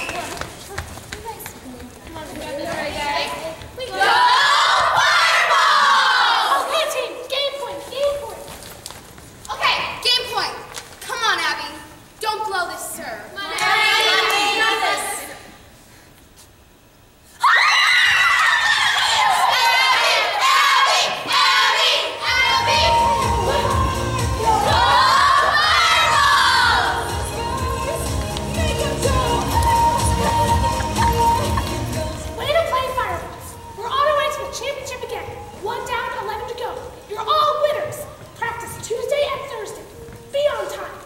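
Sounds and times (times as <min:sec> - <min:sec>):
girls shouting a cheer: 0:02.8 - 0:07.3, 0:17.4 - 0:27.8
pop music with steady beat: 0:22.4 - 0:32.4.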